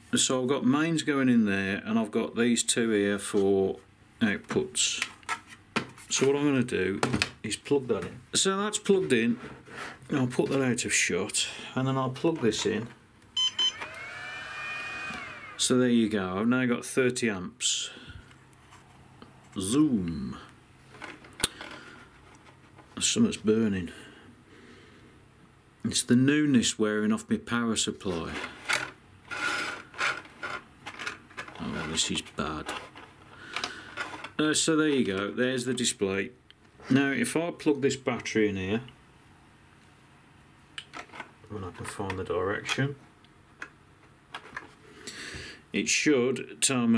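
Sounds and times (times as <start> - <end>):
short high beeps: 13.4 - 13.9
battery charger whine: 13.4 - 15.7.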